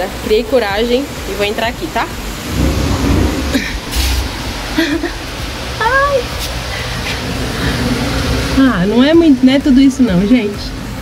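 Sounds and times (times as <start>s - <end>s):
phone microphone handling rumble: 2.2s - 4.4s.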